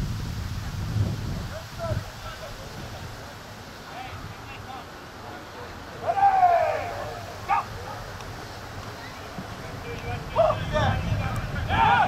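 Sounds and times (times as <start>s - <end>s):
outdoor background noise: 0.0s - 12.0s
man shouting: 6.0s - 7.7s, 11.6s - 12.0s.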